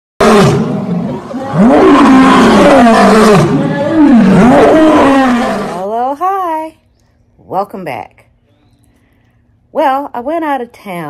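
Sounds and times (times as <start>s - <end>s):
lion roaring: 0.2s - 5.8s.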